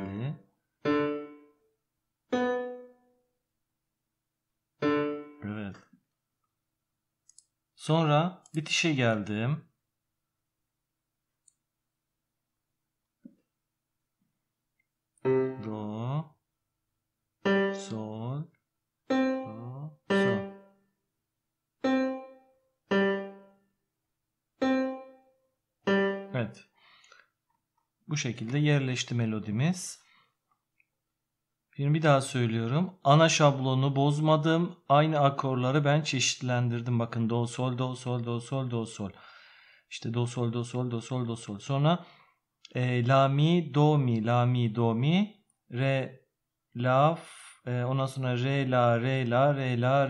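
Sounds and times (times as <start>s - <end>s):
synthesized piano note: 2.3s - 3.2s, 4.8s - 5.6s, 15.2s - 16.1s, 17.4s - 18.0s, 19.1s - 20.8s, 21.8s - 23.6s, 24.6s - 26.5s.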